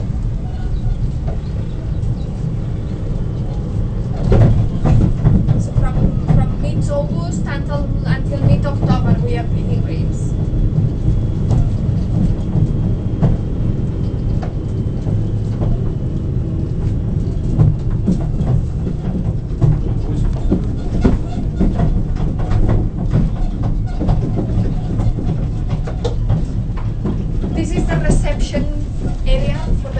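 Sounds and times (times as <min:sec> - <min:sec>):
carriage rattles and knocks: 0:00.0 - 0:29.9
vehicle rumble from on board: 0:00.0 - 0:29.9.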